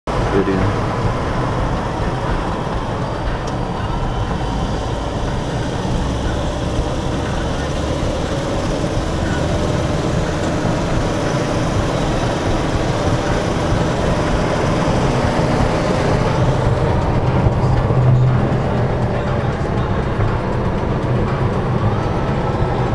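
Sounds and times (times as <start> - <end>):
car driving road noise: 0.1 - 22.9.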